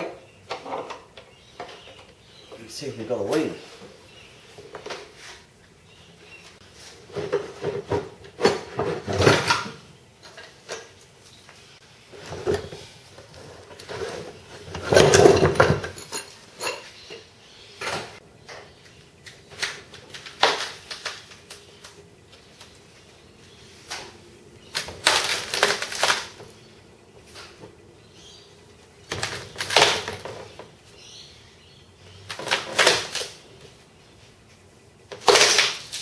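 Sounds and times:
mould cracking apart: 24.7 - 26.5, 29.1 - 30.3, 35.2 - 36.0.

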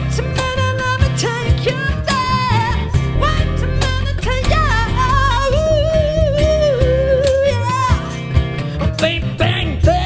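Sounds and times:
woman singing: 0.0 - 8.2, 9.0 - 10.0
cajon strokes: 0.0 - 9.3
acoustic guitar: 0.0 - 10.0
upright bass: 0.0 - 10.0.

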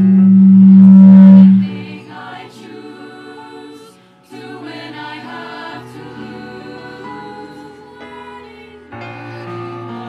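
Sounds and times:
choir singing: 1.1 - 10.0.

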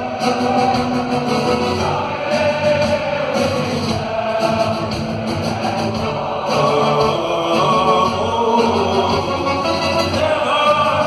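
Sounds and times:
live band playing: 0.0 - 11.0
voices singing slow melody: 0.0 - 11.0.

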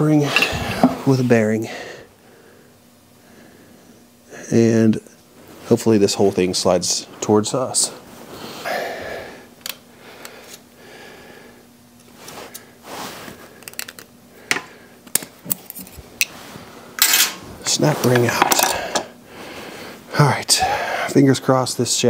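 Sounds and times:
metal tools clattering: 17.0 - 17.4, 18.1 - 19.1.

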